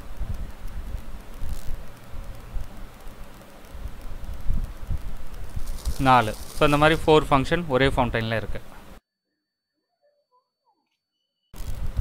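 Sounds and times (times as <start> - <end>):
wind rumble on microphone: 0.0 - 3.0, 3.6 - 7.1, 11.6 - 12.0
firework fountain spraying sparks: 0.0 - 7.6.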